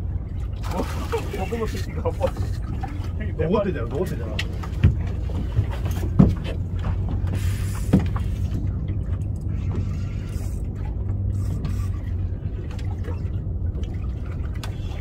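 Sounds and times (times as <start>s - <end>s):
outboard motor idling: 0.0s - 15.0s
fishing reels whirring: 9.5s - 12.1s.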